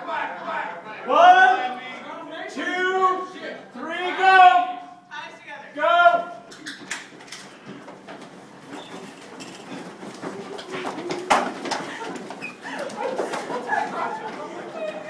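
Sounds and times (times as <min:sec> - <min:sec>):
footfalls: 0:07.0 - 0:15.0.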